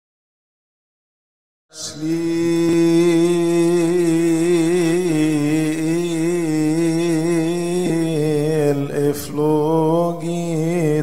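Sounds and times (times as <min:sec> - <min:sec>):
man chanting a long note: 0:01.8 - 0:08.9.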